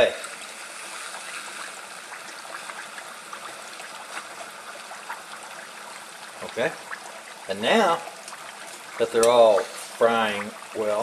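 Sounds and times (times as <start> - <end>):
fries sizzling in oil: 0.0 - 11.0.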